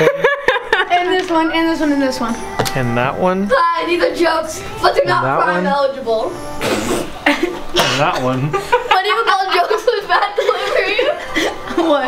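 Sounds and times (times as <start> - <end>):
boys laughing: 0.0 - 1.4, 6.9 - 12.0
boys speaking: 0.9 - 7.1, 7.7 - 12.0.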